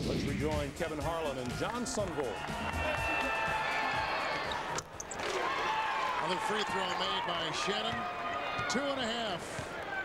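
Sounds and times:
crowd noise: 0.9 - 10.0.

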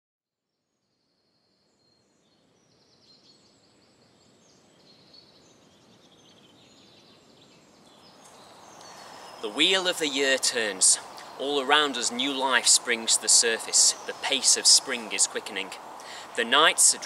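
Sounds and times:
soft outdoor hiss: 0.5 - 17.0
small birds chirping and singing: 1.4 - 17.0.

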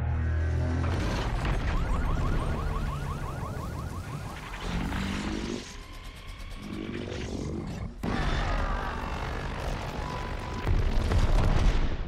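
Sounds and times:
deep mechanical roar: 4.4 - 10.7.

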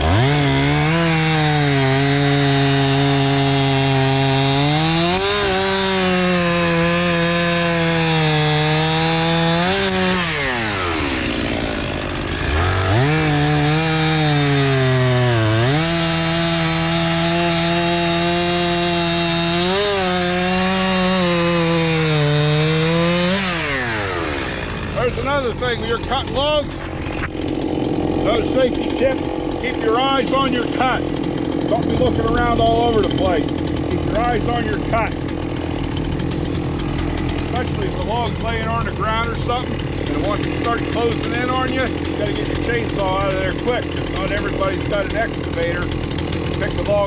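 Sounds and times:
chainsaw cutting log: 0.0 - 47.0.

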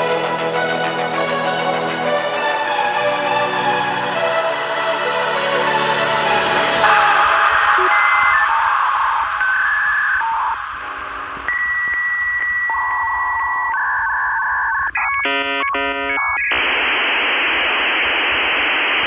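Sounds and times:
dial-up modem tones: 6.9 - 19.0.

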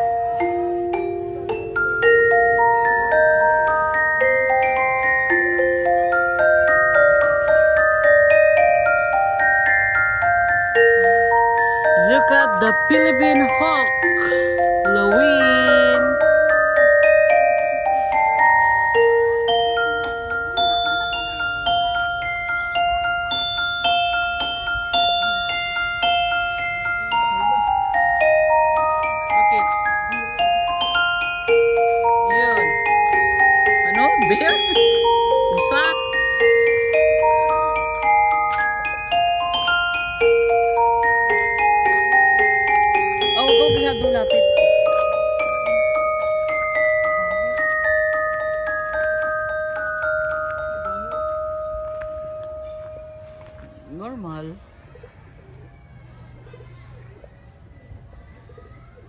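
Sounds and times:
metal chime notes ringing: 0.0 - 54.6
bell-like mallet percussion melody: 0.0 - 54.8.

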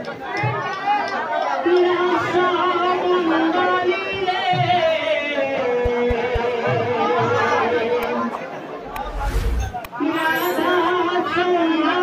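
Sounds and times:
crowd chatter: 4.8 - 11.6.

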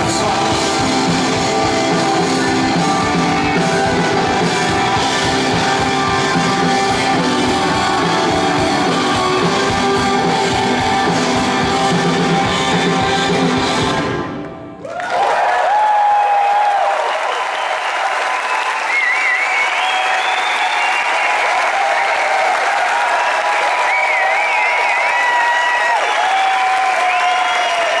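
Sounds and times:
crowd applauding and cheering: 0.0 - 28.0
whistles from crowd: 17.0 - 22.6, 23.2 - 28.0.

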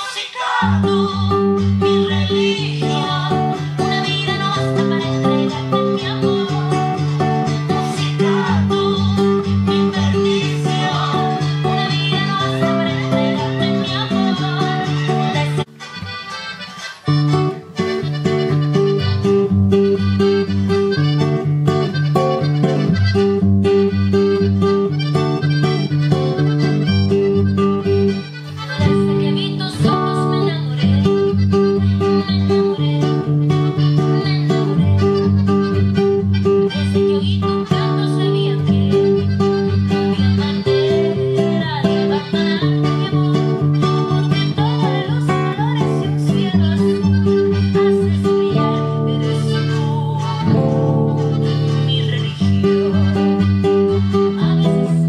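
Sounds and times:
classical guitar strumming: 0.6 - 55.0
guitar picked notes: 0.6 - 55.0.

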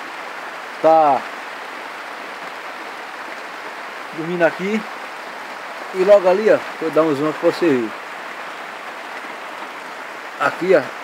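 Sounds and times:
steady rain hiss: 0.0 - 11.0.

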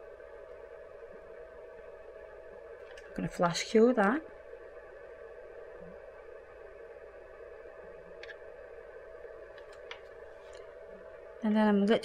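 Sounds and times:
faint constant tone: 0.0 - 12.0
low steady hum: 0.0 - 12.0.

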